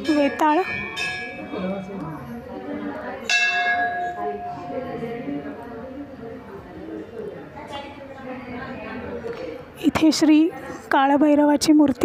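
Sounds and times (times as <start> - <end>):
temple bell ringing: 0.0 - 2.4, 3.2 - 5.4
people murmuring: 0.0 - 12.0.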